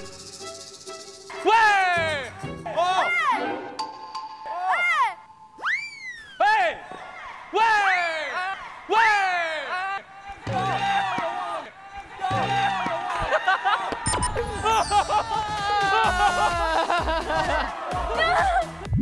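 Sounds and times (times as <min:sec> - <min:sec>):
ding-like tone: 0:03.8 - 0:05.6.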